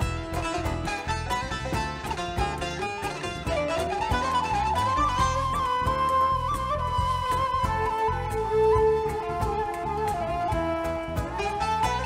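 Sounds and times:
folk band playing: 0.0s - 12.0s
plucked lute: 0.0s - 12.0s
wavering flute melody: 0.0s - 12.0s.

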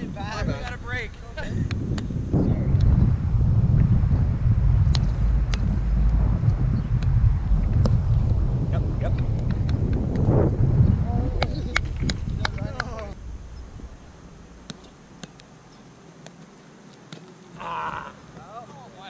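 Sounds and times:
wind buffeting microphone: 0.0s - 15.7s.

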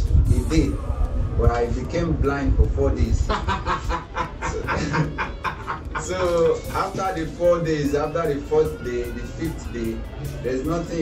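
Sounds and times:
men laughing: 3.2s - 7.0s.

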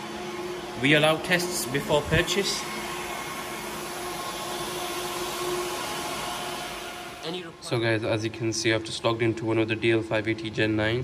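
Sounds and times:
server cooling fans whirring: 0.0s - 11.0s.

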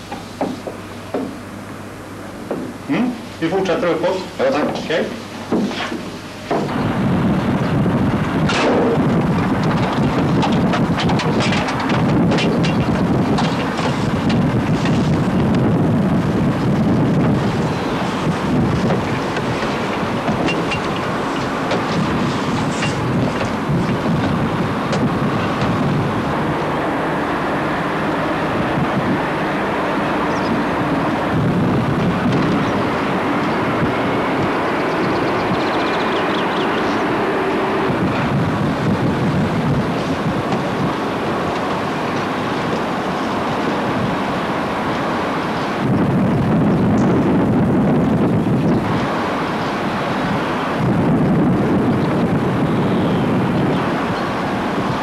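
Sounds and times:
wind buffeting microphone: 5.5s - 55.0s.

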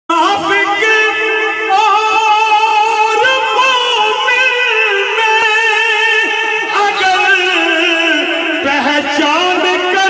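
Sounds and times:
man singing devotional poem: 0.1s - 10.0s.

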